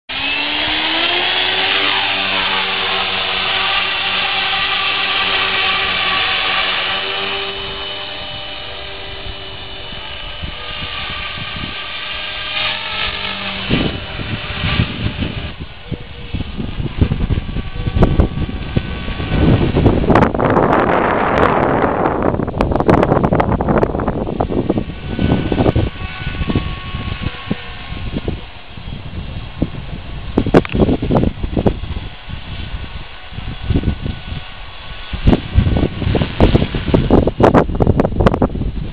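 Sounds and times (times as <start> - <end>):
model helicopter rotor whine: 0.1 - 38.9
wind buffeting microphone: 0.1 - 38.9.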